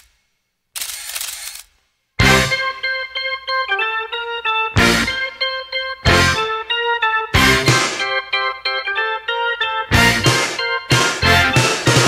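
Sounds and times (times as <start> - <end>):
camera shutter motor-drive clicking: 0.8 - 1.7.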